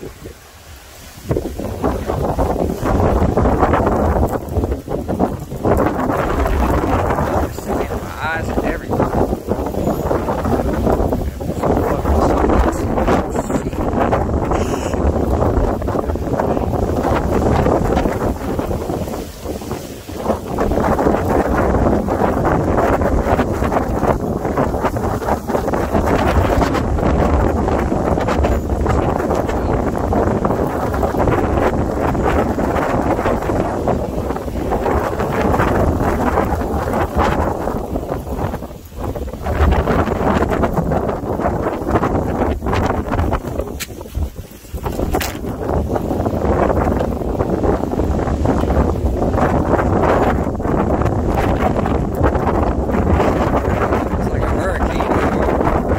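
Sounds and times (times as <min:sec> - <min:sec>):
strong wind buffeting microphone: 0:00.0 - 0:55.9.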